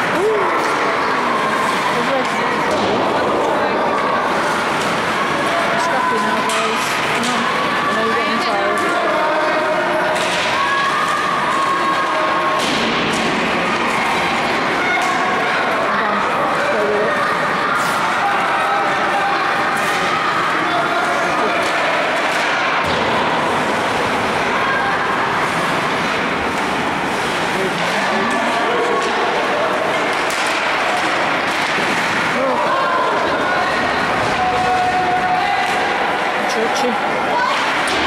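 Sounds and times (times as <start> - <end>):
people chattering and calling: 0.0 - 38.0
hockey sticks and puck knocks: 8.8 - 15.4, 21.4 - 24.4, 25.4 - 32.5, 37.5 - 38.0.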